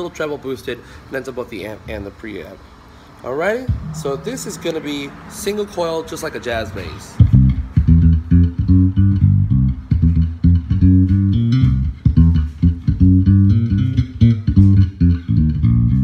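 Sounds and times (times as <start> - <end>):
electric bass line: 3.6 - 5.5, 7.2 - 16.0.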